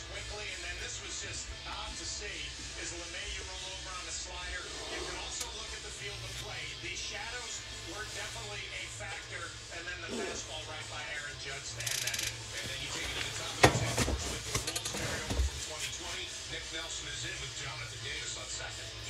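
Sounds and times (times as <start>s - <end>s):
television music: 0.0s - 19.0s
commentator speaking: 6.1s - 19.0s.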